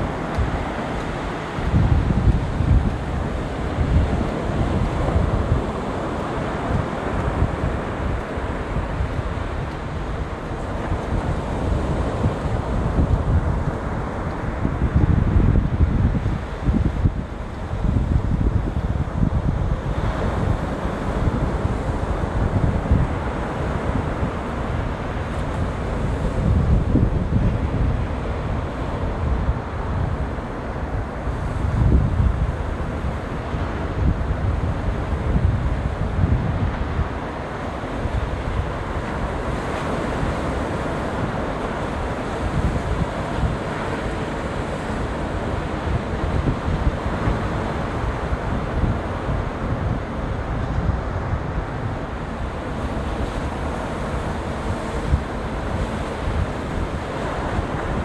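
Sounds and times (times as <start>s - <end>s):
ocean surf breaking: 0.0s - 58.0s
wind buffeting microphone: 0.0s - 58.0s.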